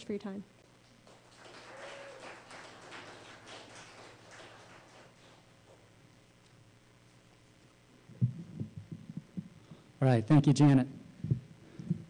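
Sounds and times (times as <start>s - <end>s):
microphone handling thumps: 8.1s - 9.6s.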